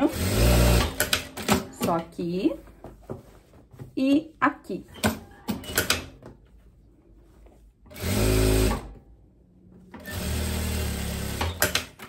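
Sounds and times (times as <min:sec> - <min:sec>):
sewing machine stitching: 0:00.0 - 0:01.8, 0:07.9 - 0:08.9, 0:10.0 - 0:12.0.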